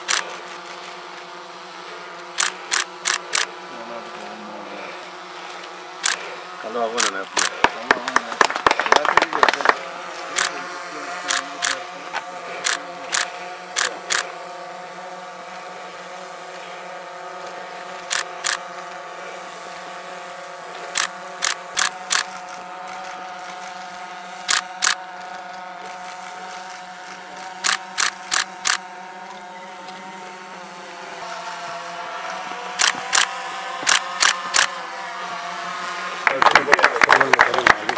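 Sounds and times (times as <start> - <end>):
camera shutters clicking: 0.0 - 0.9, 2.3 - 3.5, 6.0 - 6.3, 7.0 - 7.7, 9.5 - 10.6, 11.3 - 14.3, 18.0 - 18.7, 20.9 - 23.7, 24.4 - 25.3, 27.5 - 28.8, 32.8 - 34.7.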